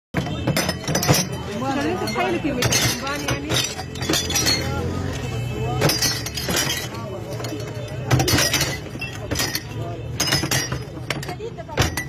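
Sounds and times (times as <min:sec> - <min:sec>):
metal canisters clinking: 0:00.2 - 0:12.0
men talking: 0:04.0 - 0:10.5.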